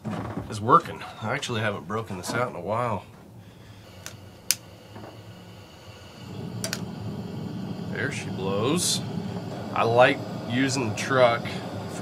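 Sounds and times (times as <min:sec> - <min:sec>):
gas burner rushing flame: 0:01.2 - 0:12.0
igniter clicks: 0:04.0 - 0:05.1, 0:06.3 - 0:12.0.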